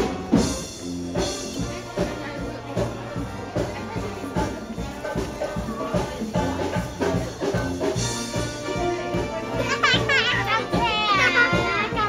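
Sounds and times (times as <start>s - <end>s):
background music: 0.0s - 12.0s
young children's high voices: 9.5s - 12.0s.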